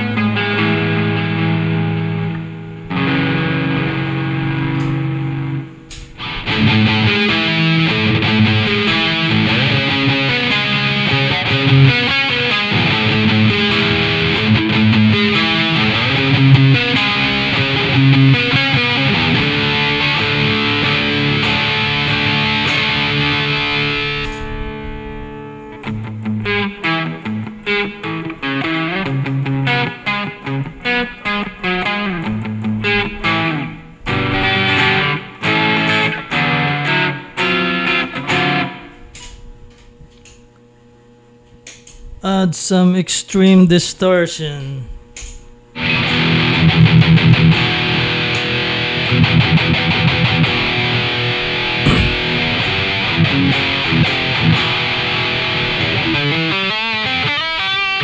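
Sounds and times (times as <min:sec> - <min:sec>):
overdriven electric guitar: 0:00.0 - 0:40.4, 0:45.2 - 0:58.0.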